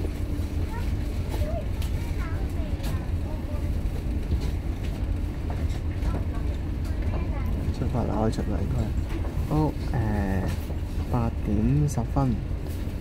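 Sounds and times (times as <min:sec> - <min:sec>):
ferry engines rumbling: 0:00.0 - 0:13.0.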